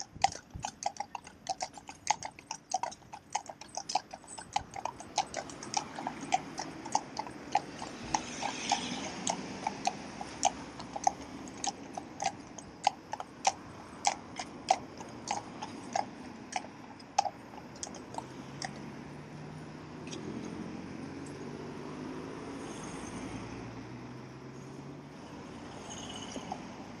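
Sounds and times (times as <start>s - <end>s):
hooves clip-clopping on tarmac: 0.0s - 18.9s
car engine humming: 0.8s - 21.8s.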